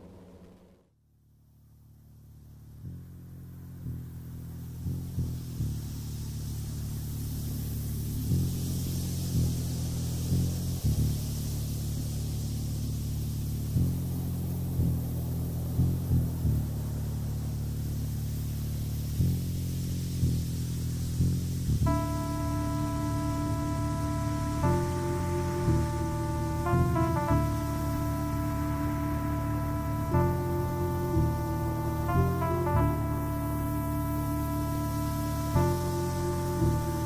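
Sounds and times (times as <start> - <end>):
dark synthesizer music: 3.8 - 37.0
hissing noise: 4.6 - 37.0.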